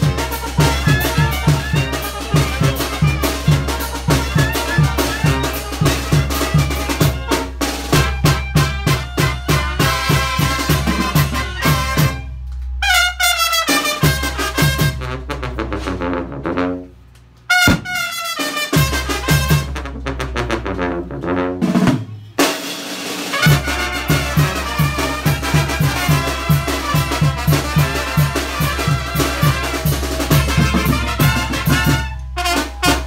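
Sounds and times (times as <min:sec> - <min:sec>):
bass drum beat: 0:00.0 - 0:12.3, 0:17.6 - 0:18.2, 0:23.4 - 0:32.1
brass band playing: 0:00.0 - 0:33.0.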